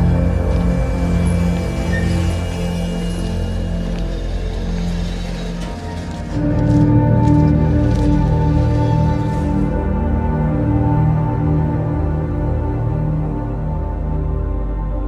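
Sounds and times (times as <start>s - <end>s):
music with sustained notes: 0.0s - 15.0s.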